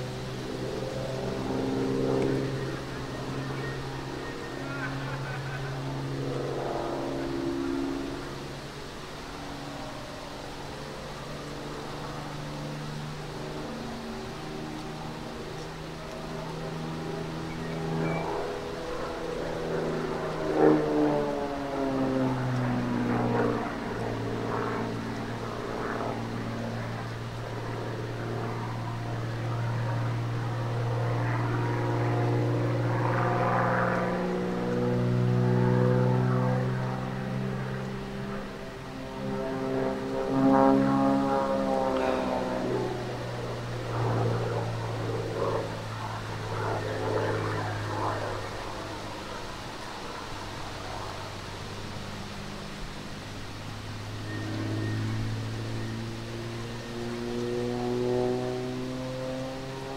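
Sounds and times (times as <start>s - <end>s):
propeller plane engine droning: 0.0s - 59.9s.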